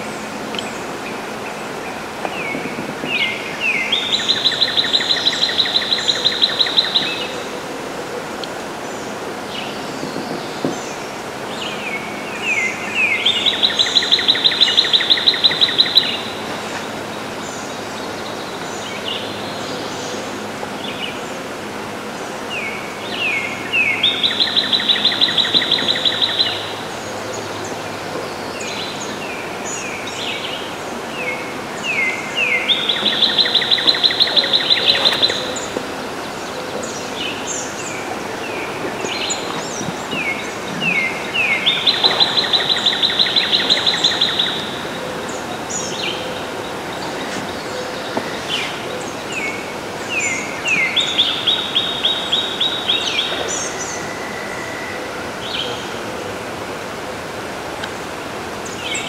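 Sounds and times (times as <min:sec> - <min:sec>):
songbird singing with trill: 0:00.0 - 0:07.5, 0:09.5 - 0:21.2, 0:22.5 - 0:56.1
swamp ambience hiss: 0:00.0 - 0:59.0.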